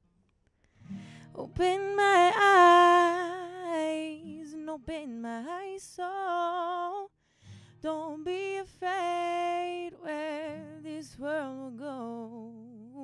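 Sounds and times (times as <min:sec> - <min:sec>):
acoustic guitar: 0:00.0 - 0:13.0
woman singing: 0:01.2 - 0:07.1, 0:07.7 - 0:13.0.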